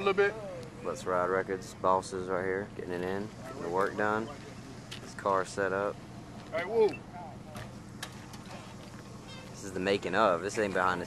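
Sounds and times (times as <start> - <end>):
car engines idling: 0.0 - 11.0
faint distant voices: 0.0 - 11.0.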